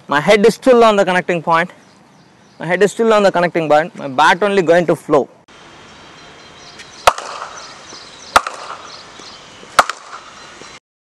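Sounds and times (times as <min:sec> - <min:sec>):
cricket bat striking ball: 0:07.0 - 0:07.7, 0:08.3 - 0:09.0, 0:09.8 - 0:10.3.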